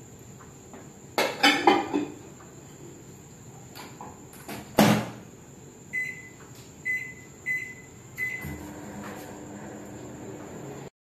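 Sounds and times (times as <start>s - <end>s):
microwave humming: 5.9s - 10.9s
short keypad beeps: 6.0s - 8.6s.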